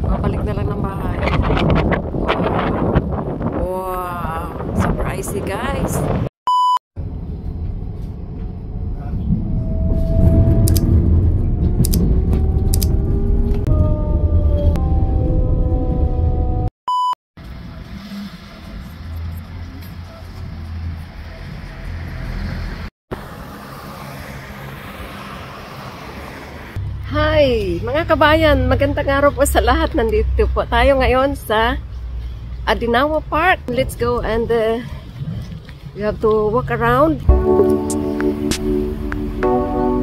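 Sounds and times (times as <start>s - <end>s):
short electronic beeps: 6.5s - 6.8s, 16.9s - 17.2s
electric train rumbling: 7.0s - 16.7s
whining tones gliding in pitch: 8.9s - 16.7s.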